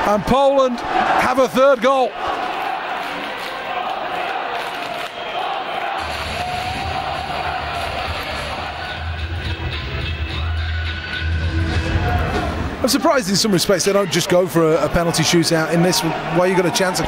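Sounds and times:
crowd noise: 0.0s - 17.0s
music over loudspeakers: 6.0s - 12.7s.

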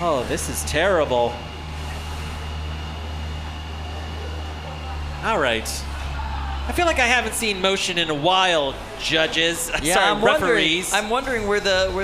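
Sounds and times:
machine hum with high whine: 0.0s - 12.0s.

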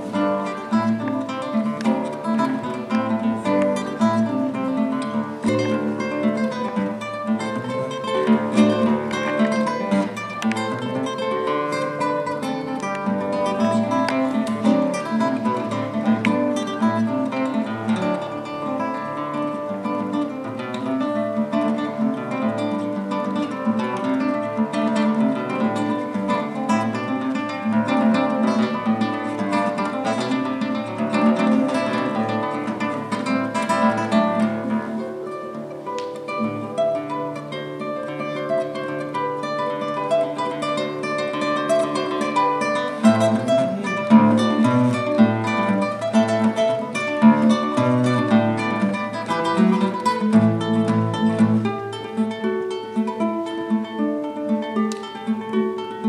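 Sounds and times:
classical guitar fingerpicking: 0.0s - 56.0s.

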